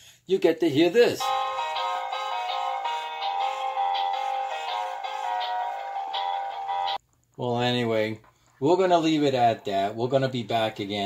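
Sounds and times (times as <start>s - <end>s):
tinny electronic toy melody: 1.2s - 7.0s.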